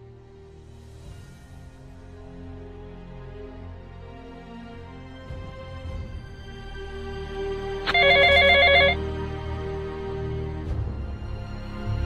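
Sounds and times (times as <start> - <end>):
background music: 0.0 - 12.0
telephone ringing with electronic trill: 7.9 - 9.0.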